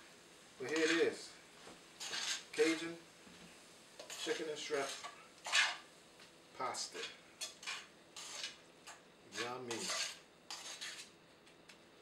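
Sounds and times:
metal tongs scraping a frying pan: 0.6s - 1.2s, 2.0s - 2.8s, 4.0s - 5.9s, 6.9s - 11.1s.

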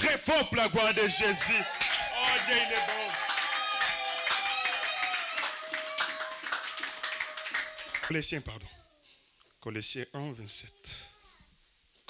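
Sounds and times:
congregation applauding: 0.6s - 8.3s.

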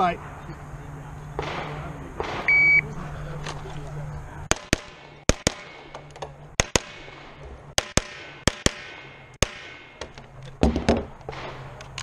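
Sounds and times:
pistol shots: 1.4s - 2.6s, 4.5s - 6.0s, 6.6s - 10.0s
loud deep knocks: 10.6s - 11.1s.

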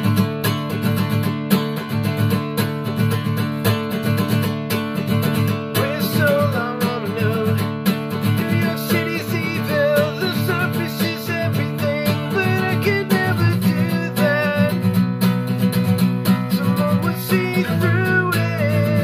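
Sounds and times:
acoustic guitar strummed: 0.0s - 19.0s
man singing: 5.7s - 15.0s, 16.2s - 19.0s.

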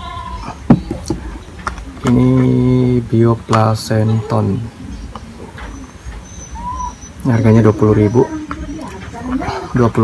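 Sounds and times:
faint animal call: 0.0s - 0.6s, 3.9s - 9.8s.

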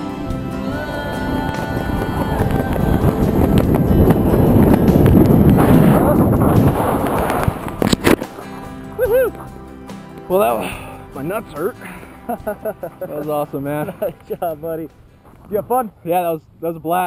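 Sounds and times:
wind rushing over microphone: 0.0s - 9.4s.

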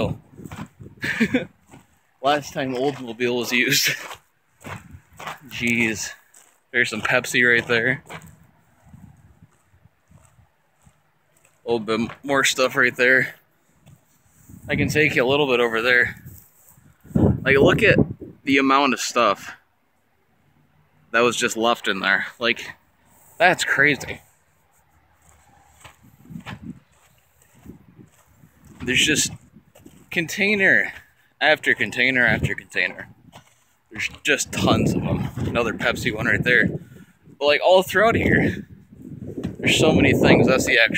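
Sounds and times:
footsteps through tall grass: 0.0s - 12.4s, 13.4s - 14.8s, 15.6s - 17.3s, 24.1s - 31.1s
faint wind buffeting microphone: 0.0s - 18.5s, 25.0s - 40.9s.

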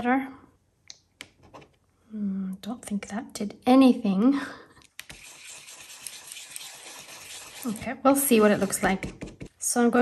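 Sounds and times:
brush bristles scratching: 5.1s - 9.0s.

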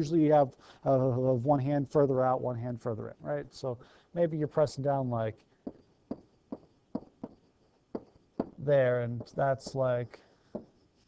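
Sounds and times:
stylus tapping on tablet screen: 5.6s - 8.6s, 10.5s - 10.8s.

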